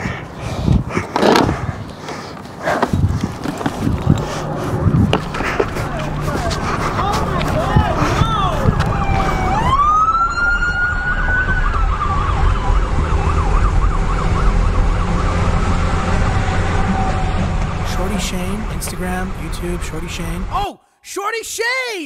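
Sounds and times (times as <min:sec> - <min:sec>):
police siren wailing and yelping: 0:04.0 - 0:17.6.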